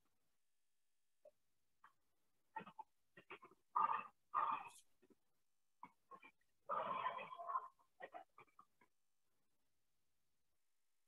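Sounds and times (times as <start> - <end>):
animal calls: 2.6 - 4.8, 6.1 - 8.6.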